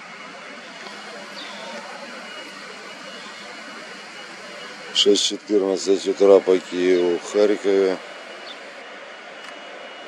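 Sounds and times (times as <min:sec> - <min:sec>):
outdoor background hiss: 0:00.0 - 0:10.0
faint chirp: 0:00.6 - 0:05.1.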